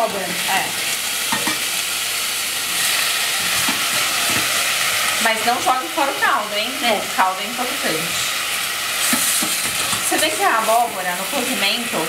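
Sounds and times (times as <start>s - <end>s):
onion frying in oil: 0.0s - 12.0s
spoon knocking in pan: 1.3s - 1.7s.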